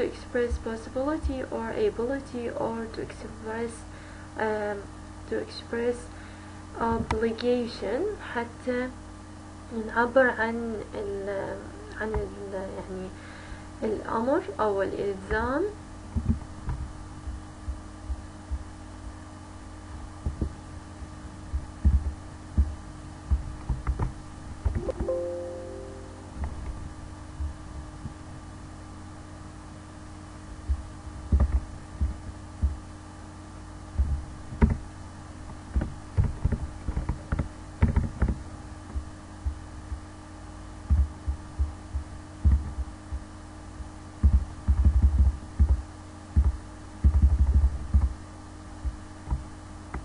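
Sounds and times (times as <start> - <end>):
steady electrical hum: 0.0 - 50.0
dull low thumps: 21.5 - 24.1, 44.2 - 48.2.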